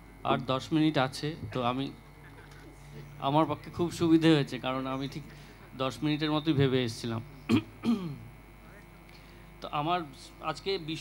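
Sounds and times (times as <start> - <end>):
man clearing throat: 7.5 - 8.3.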